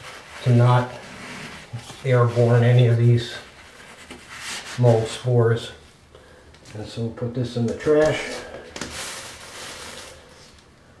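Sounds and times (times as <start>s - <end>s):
paper towels rustling: 0.0s - 5.6s, 7.6s - 10.7s.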